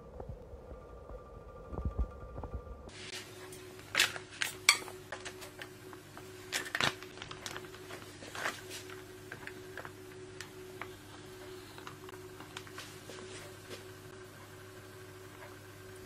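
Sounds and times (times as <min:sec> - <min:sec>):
laminator humming: 0:00.0 - 0:16.0
plastic pouch rustling: 0:06.4 - 0:10.9.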